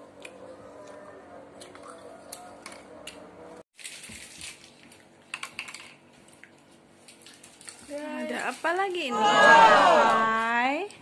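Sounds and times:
snack packets crinkling: 0:03.8 - 0:05.2.

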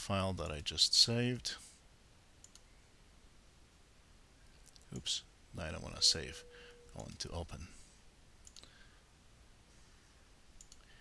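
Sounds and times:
faint computer mouse click: 0:02.4 - 0:02.7, 0:08.4 - 0:08.7, 0:10.6 - 0:10.9.

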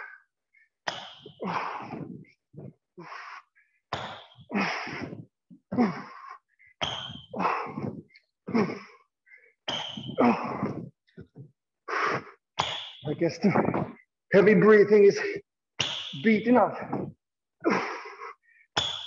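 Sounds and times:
man breathing heavily: 0:00.0 - 0:03.8, 0:04.4 - 0:12.4, 0:16.7 - 0:18.7.

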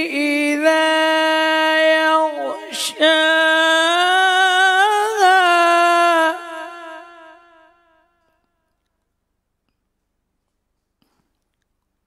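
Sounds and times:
man chanting: 0:00.0 - 0:08.0.

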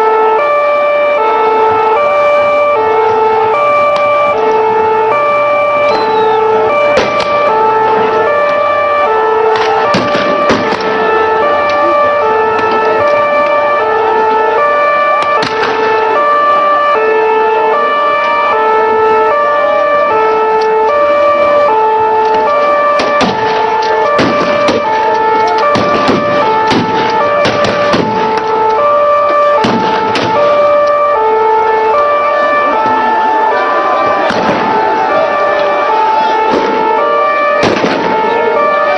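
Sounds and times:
two-tone siren: 0:00.0 - 0:38.9
sharp bangs and cracks: 0:02.4 - 0:16.4, 0:20.2 - 0:31.1, 0:34.0 - 0:38.9.

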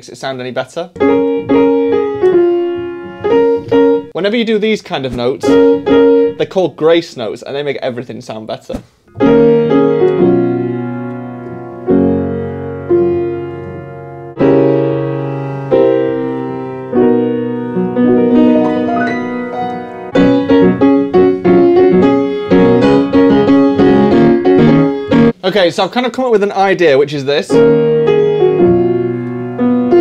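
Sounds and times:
digital piano melody: 0:00.9 - 0:04.3, 0:05.3 - 0:06.7, 0:09.1 - 0:25.4, 0:27.3 - 0:30.0.

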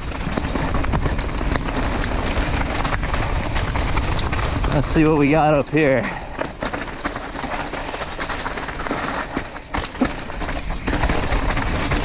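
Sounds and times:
bike tyres on dirt trail: 0:00.0 - 0:12.0.

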